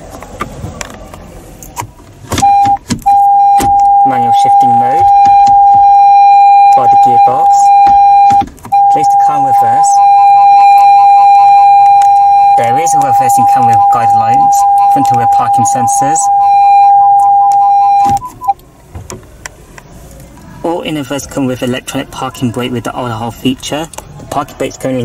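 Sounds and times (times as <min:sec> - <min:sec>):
reverse warning beep: 0:02.4 - 0:18.5.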